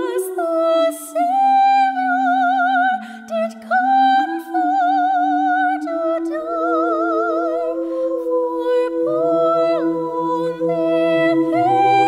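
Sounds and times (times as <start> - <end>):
a cappella ensemble singing: 0.0 - 12.0.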